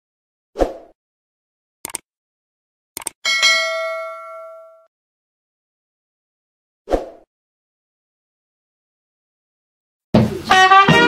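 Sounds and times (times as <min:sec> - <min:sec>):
bell-like notification ding: 0:03.3 - 0:04.9.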